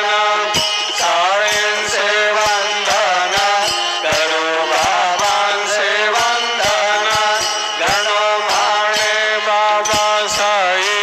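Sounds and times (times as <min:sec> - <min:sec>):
hymn singing: 0:00.0 - 0:11.0
percussion strikes: 0:00.0 - 0:11.0.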